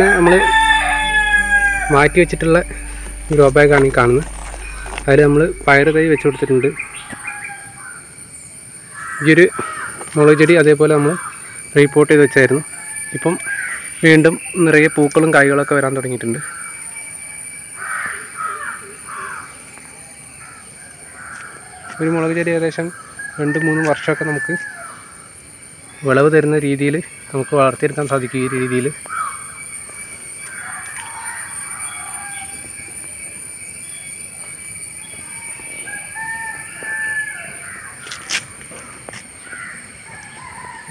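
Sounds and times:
rooster crowing: 0.0s - 8.1s, 23.0s - 25.2s, 30.5s - 32.8s, 35.3s - 38.1s, 39.5s - 40.9s
crow cawing: 8.9s - 10.1s, 11.0s - 11.6s, 13.4s - 14.0s, 17.8s - 19.6s, 20.4s - 22.0s, 28.3s - 29.5s, 36.8s - 40.9s.

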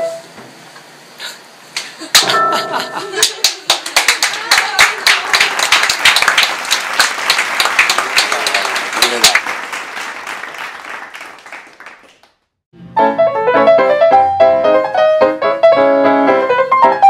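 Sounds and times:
audience applause: 3.2s - 12.4s.

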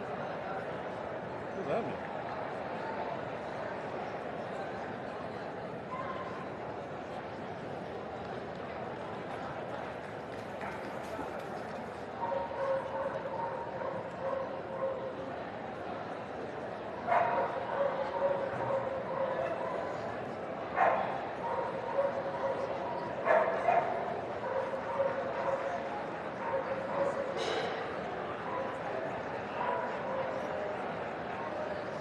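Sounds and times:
crowd chatter: 0.0s - 32.0s
dogs barking: 17.1s - 19.8s, 20.8s - 25.7s.

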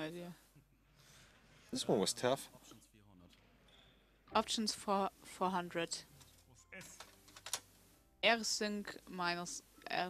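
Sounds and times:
computer keyboard clicking: 7.0s - 7.6s.

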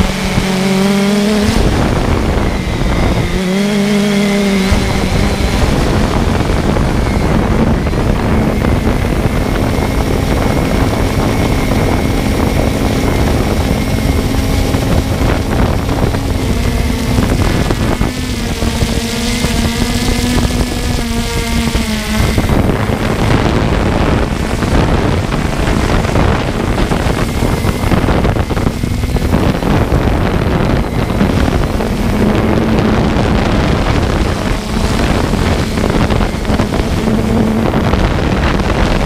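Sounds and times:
drone propellers humming: 0.0s - 39.0s
wind on microphone: 0.0s - 39.0s.

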